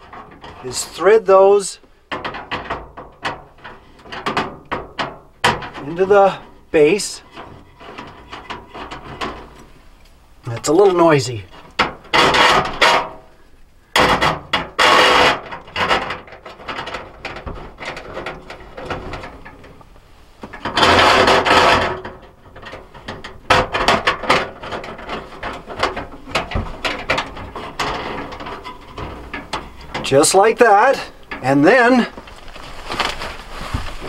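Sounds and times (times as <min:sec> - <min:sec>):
metal rods scraping and rattling: 0:00.0 - 0:13.4, 0:14.0 - 0:34.0.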